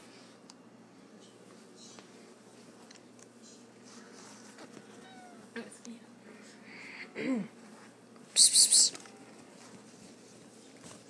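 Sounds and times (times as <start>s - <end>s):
cat meowing: 4.9s - 5.5s.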